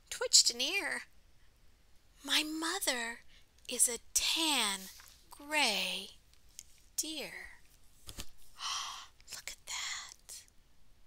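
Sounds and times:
woman whispering: 7.0 - 7.7, 8.6 - 10.5.

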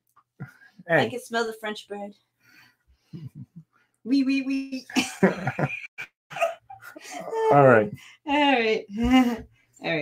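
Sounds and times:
man and woman laughing: 4.9 - 7.9.

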